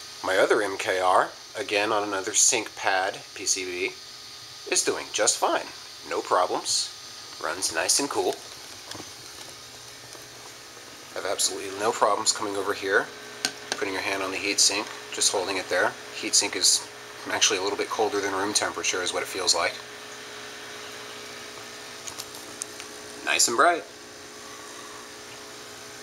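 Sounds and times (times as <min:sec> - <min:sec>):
cooling fan humming: 0:00.0 - 0:26.0
aquarium air stones bubbling: 0:02.4 - 0:26.0.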